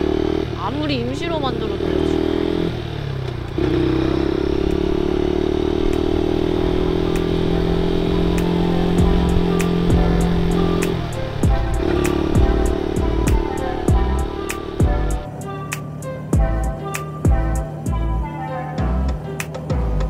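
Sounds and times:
motorcycle engine cruising: 0.0 - 20.0.

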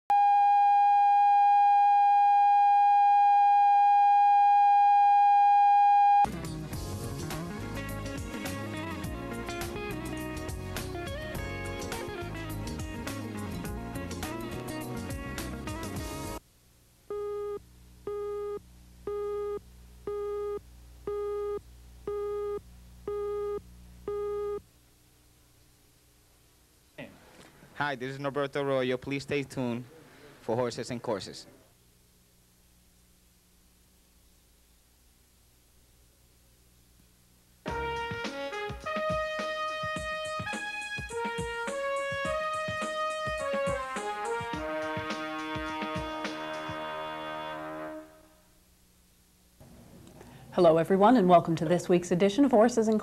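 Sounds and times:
faint low hum: 16.4 - 37.7.

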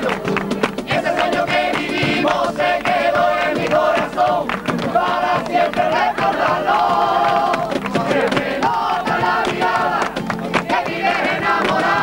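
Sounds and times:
men singing in unison: 0.0 - 12.0
sharp percussive beat: 0.0 - 12.0.

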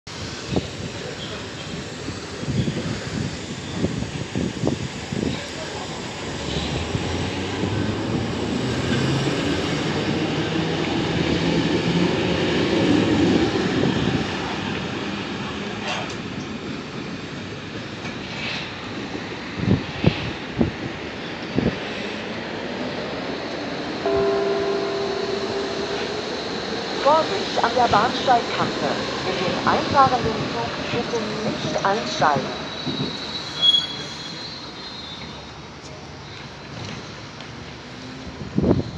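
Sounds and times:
electronic chime: 24.1 - 27.0.

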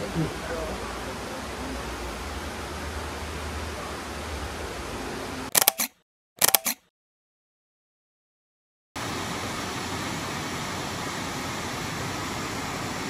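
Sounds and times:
camera shutter clicks: 5.5 - 6.9.

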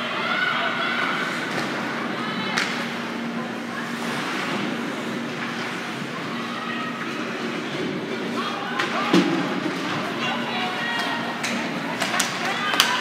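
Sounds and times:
murmur of spectators: 0.0 - 13.0
steady hum: 0.0 - 13.0.

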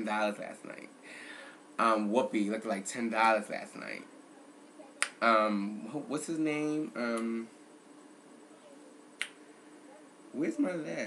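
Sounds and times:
finger snap: 5.0 - 5.2, 7.1 - 7.4, 9.2 - 9.4.

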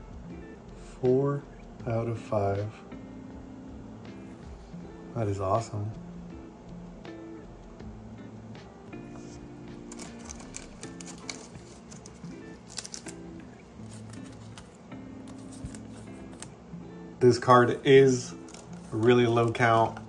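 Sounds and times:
soft background music: 0.0 - 20.0
plastic sleeve crinkling: 9.9 - 16.5.

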